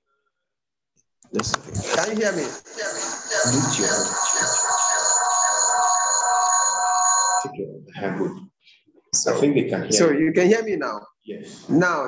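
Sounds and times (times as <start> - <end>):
electronic ringing tone: 2.8 - 7.5.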